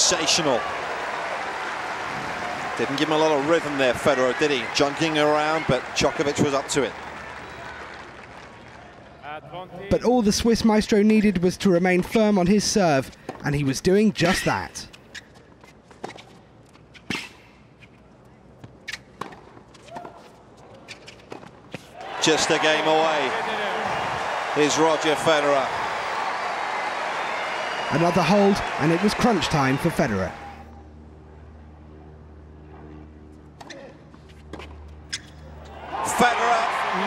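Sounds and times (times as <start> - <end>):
crowd roar: 0.0 - 9.1, 22.0 - 30.7, 35.6 - 37.0.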